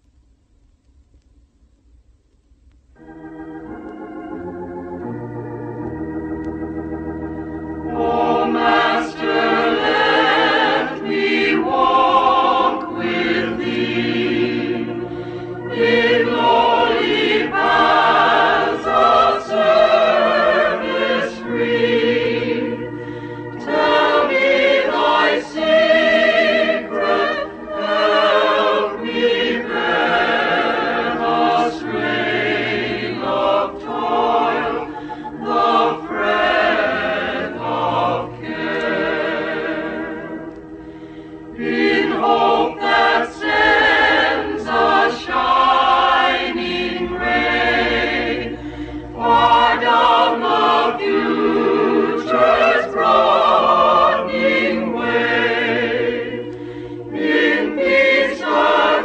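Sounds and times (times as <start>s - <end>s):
choir singing a hymn: 3.0s - 59.0s.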